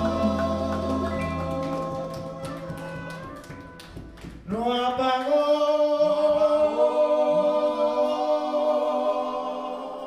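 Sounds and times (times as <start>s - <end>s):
latin band music: 0.0s - 4.2s
hand taps on congas: 0.4s - 4.5s.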